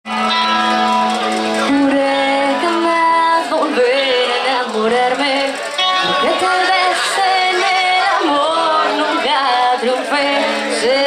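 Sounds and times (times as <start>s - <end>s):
bass guitar: 0.0s - 11.0s
electric guitar: 0.1s - 11.0s
woman singing into a microphone: 1.6s - 11.0s.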